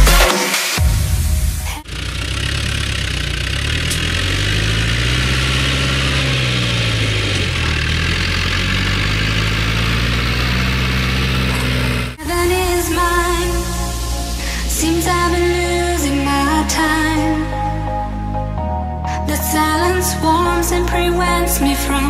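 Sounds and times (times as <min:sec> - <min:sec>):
tractor diesel engine running: 0:01.4 - 0:18.5.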